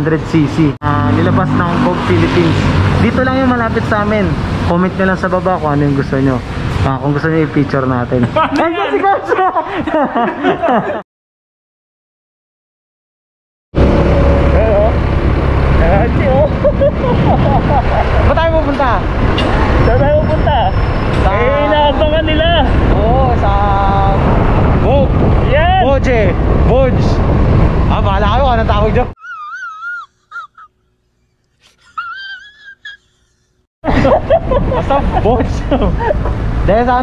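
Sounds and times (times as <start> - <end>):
road and engine rumble: 0.0 - 8.5, 13.8 - 29.2, 33.8 - 37.0
people talking: 0.0 - 9.6, 14.5 - 15.0, 15.8 - 16.8, 18.2 - 19.0, 19.8 - 27.2, 34.9 - 37.0
wind buffeting microphone: 13.8 - 29.1.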